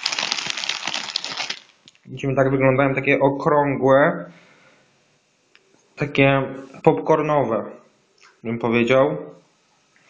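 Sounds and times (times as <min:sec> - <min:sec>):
snack bag rustling and crackling: 0:00.0 - 0:02.0.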